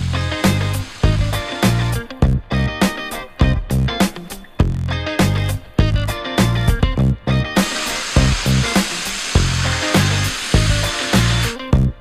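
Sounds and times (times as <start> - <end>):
loud steady hiss: 0.0 - 2.2, 7.6 - 11.7
upbeat music with bass and guitar: 0.0 - 12.0.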